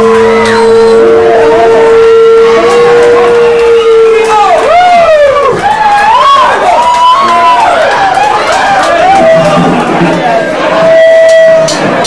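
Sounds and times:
amplifier feedback tone: 0.0s - 4.2s
feedback squealing: 0.0s - 4.2s.

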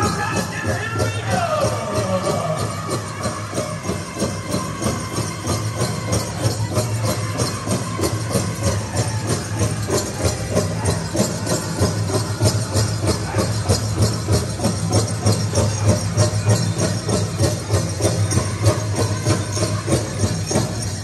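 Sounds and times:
bells jingling: 0.0s - 21.0s
drum beaten in fast rhythm: 0.0s - 21.0s.

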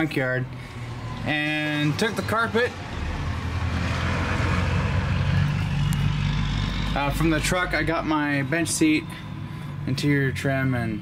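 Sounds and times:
vehicle engine running: 1.9s - 11.0s.

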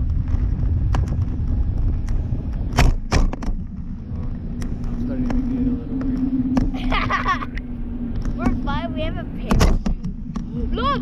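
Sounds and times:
steady low hum: 0.0s - 11.0s
wind buffeting microphone: 0.0s - 11.0s.

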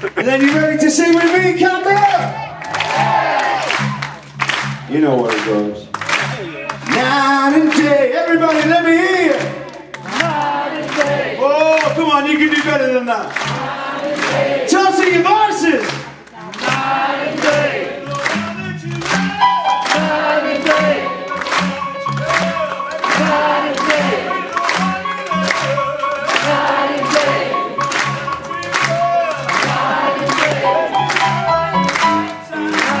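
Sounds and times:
live blues band playing: 0.0s - 11.2s, 15.8s - 33.0s
crowd singing along: 9.0s - 11.9s, 13.3s - 33.0s.

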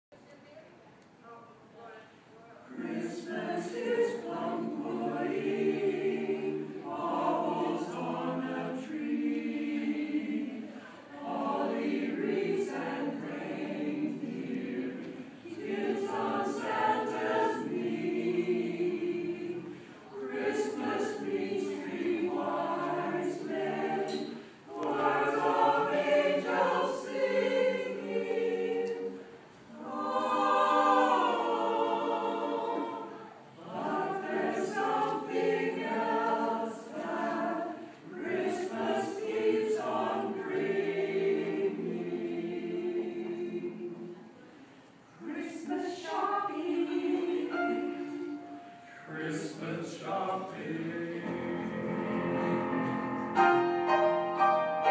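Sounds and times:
mixed choir singing: 2.6s - 54.9s.

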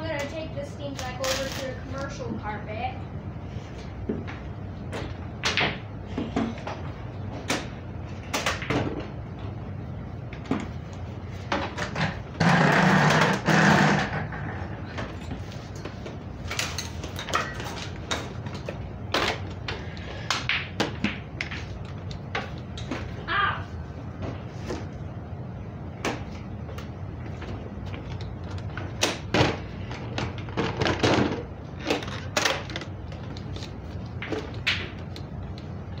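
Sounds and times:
low steady hum: 0.0s - 36.0s
knocks and clatter of handling: 27.4s - 35.0s.

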